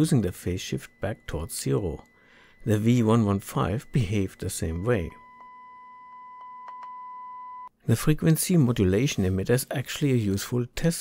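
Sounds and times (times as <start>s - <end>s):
sine test tone through radio speaker: 0.0s - 7.8s.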